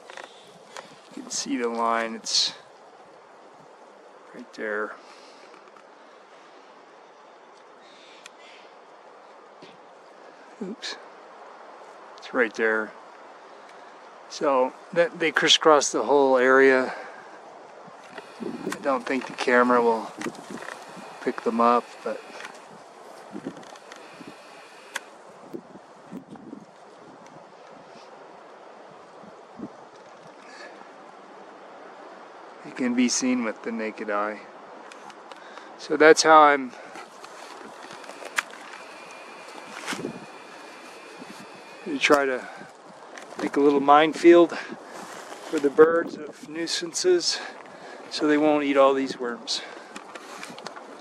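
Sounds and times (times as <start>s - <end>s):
faint outdoor background hiss: 0.0s - 51.0s
wind on microphone: 17.8s - 30.4s, 37.0s - 46.6s
faint rustling: 17.9s - 25.2s, 36.7s - 46.4s.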